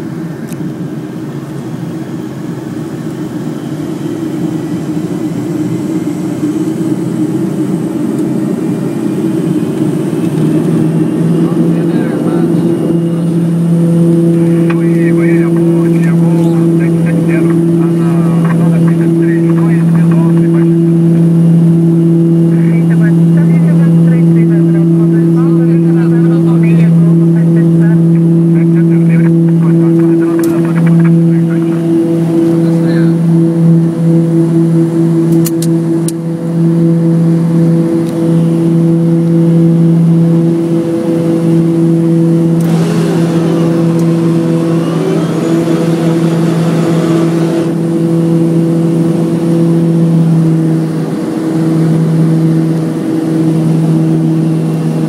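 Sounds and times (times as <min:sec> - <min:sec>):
turboprop engines and propellers: 0:00.0 - 0:55.0.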